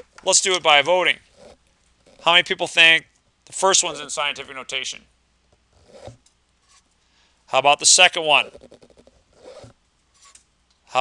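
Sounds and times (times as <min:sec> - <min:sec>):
highlighter scratching on paper: 0:05.8 - 0:06.9, 0:08.3 - 0:10.4.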